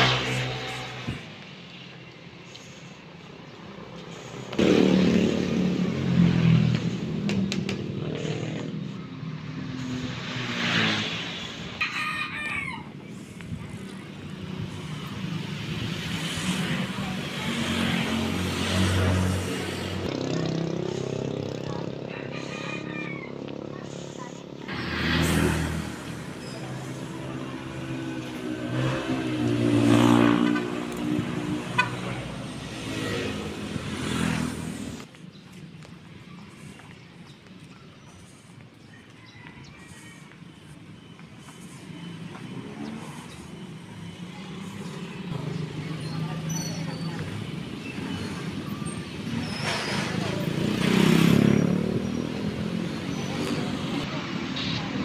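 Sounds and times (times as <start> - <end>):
motorcycle tricycle engine: 0.0 - 11.8, 13.0 - 55.0
small motor vehicles passing: 0.0 - 55.0.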